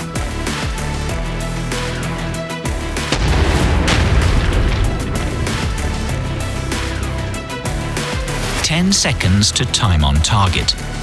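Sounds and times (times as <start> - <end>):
background music: 0.0 - 11.0
sharp crack: 3.0 - 7.1
deep boom with low rumble: 3.1 - 7.3.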